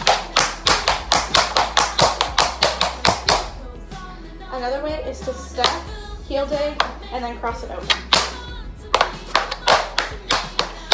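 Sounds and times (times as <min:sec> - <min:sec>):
tap shoes striking hard floor: 0:00.0 - 0:03.5, 0:05.6 - 0:05.9, 0:07.9 - 0:10.9.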